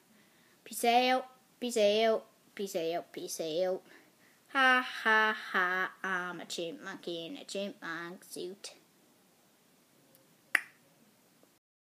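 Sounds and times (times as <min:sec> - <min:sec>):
faint room noise: 0:00.0 - 0:11.6.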